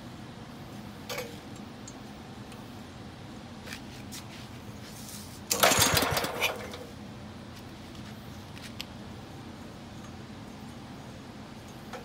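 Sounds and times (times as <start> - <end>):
starter rope pull: 5.5 - 6.8
engine turning over: 5.5 - 6.9.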